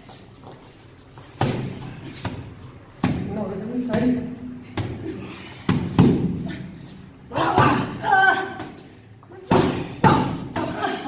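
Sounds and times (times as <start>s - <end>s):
punches landing with dull thuds: 1.3s - 6.5s.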